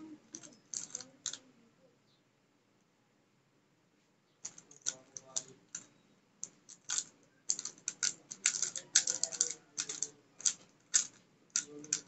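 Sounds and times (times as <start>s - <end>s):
puzzle cube clicking: 0.3s - 1.4s, 4.4s - 12.0s.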